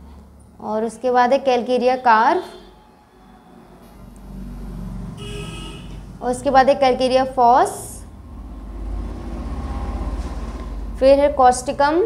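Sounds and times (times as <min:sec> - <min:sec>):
engine rumble: 0:02.6 - 0:12.0.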